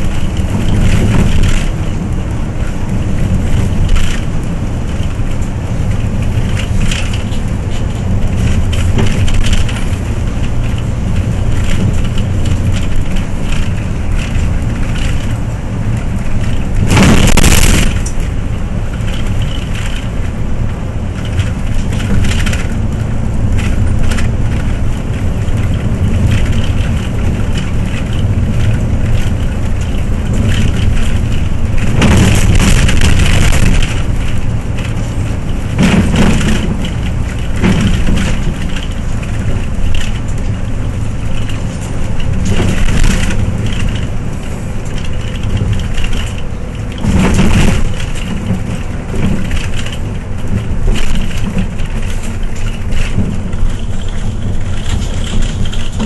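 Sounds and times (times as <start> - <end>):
bus engine and road noise: 0.0 - 56.0
rattling: 21.0 - 56.0.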